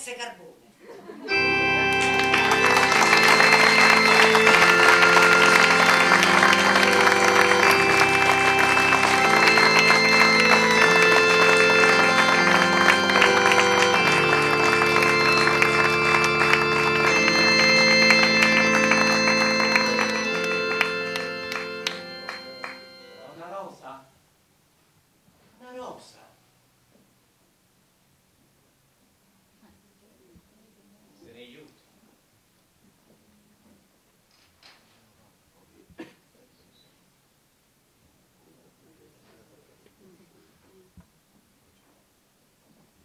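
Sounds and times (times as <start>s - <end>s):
music of long held chords: 1.3s - 23.5s
audience applauding: 1.4s - 23.3s.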